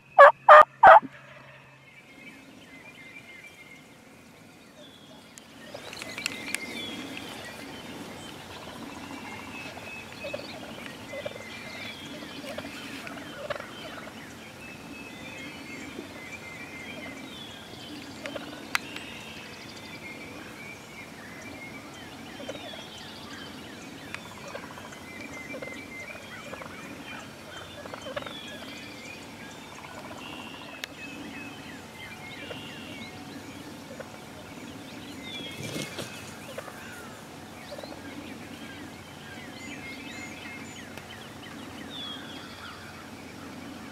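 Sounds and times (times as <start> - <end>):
turkeys gobbling and calling: 0.0 - 1.6, 12.2 - 14.2, 24.3 - 28.7.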